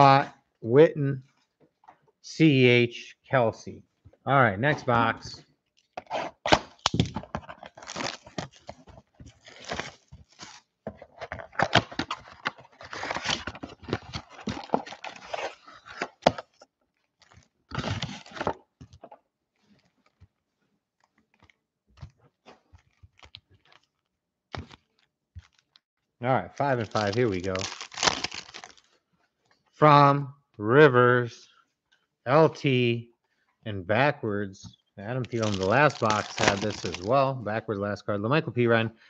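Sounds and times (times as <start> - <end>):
plastic wrapping crackling: 5.8 - 18.5, 21.0 - 25.8, 26.6 - 29.0, 35.2 - 37.2
foil packs rustling: 6.6 - 16.6, 26.6 - 28.9, 35.2 - 37.2.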